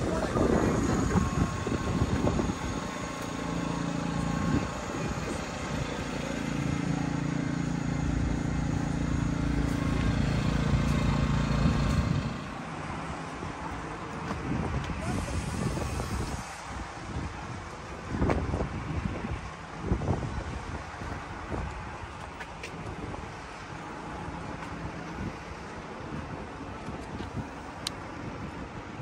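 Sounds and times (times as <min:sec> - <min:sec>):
large engine humming: 0:00.0 - 0:18.2.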